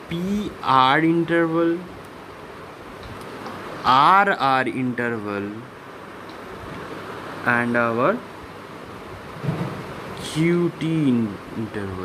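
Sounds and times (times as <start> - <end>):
background hiss and rumble: 0.0 - 12.0.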